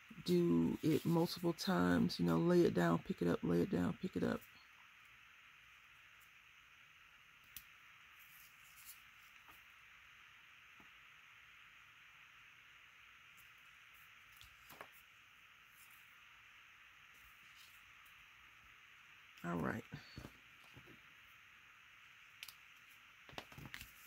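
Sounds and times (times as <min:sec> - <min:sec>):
faint steady hiss: 0:00.0 - 0:24.0.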